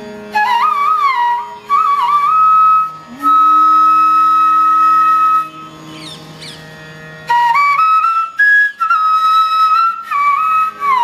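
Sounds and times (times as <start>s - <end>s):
flute long note: 0.0s - 11.0s.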